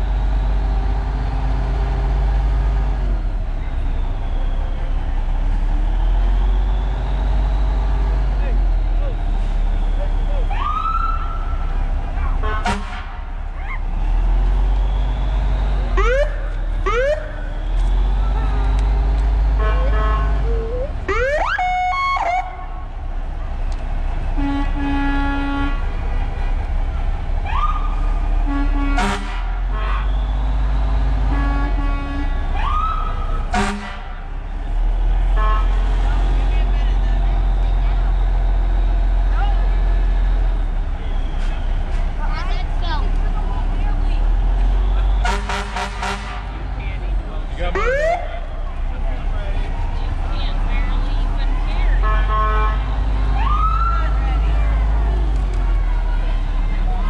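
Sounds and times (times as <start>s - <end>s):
heavy engine rumbling: 0.0s - 57.0s
people's voices: 2.8s - 24.8s, 29.6s - 57.0s
siren whoops: 10.3s - 11.6s, 15.8s - 18.4s, 19.6s - 22.7s, 27.5s - 28.0s, 32.6s - 33.4s, 53.4s - 54.2s
horn toots: 12.4s - 13.4s, 19.5s - 22.8s, 24.3s - 26.0s, 28.4s - 34.3s, 35.2s - 36.0s, 44.8s - 46.7s, 51.9s - 53.0s.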